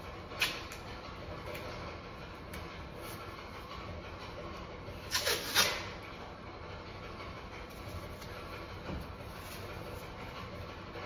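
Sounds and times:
room noise hiss and rumble: 0:00.0 - 0:11.0.

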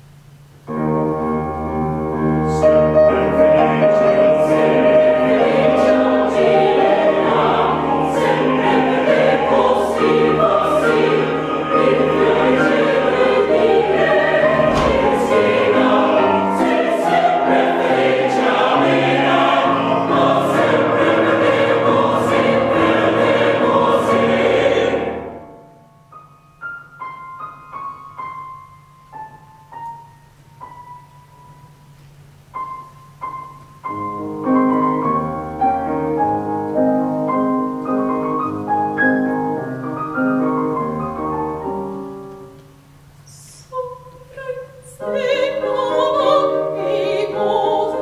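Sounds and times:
piano accompaniment: 0:00.0 - 0:43.2, 0:45.0 - 0:48.0
mixed choir singing operatic chorus: 0:02.6 - 0:25.6, 0:43.9 - 0:48.0.

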